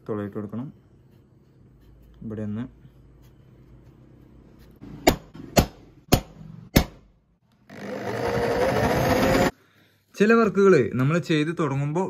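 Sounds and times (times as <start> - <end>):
electric drill spinning up: 7.7 - 9.5.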